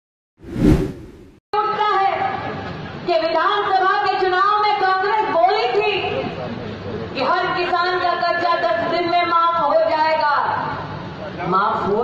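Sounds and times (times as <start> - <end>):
whoosh sound effect: 0.4 - 1.4.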